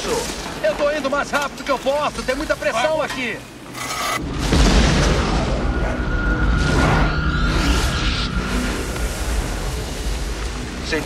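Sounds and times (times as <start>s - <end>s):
film music: 3.5s - 11.0s
deep rumbling boom: 4.2s - 10.8s.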